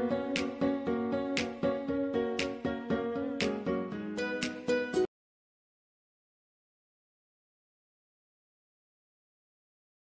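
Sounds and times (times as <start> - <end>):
guitar background music: 0.0 - 5.1.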